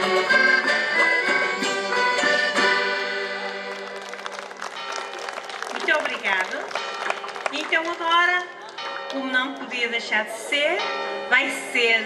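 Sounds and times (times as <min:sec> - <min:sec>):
folk instrumental accompaniment: 0:00.0 - 0:07.4.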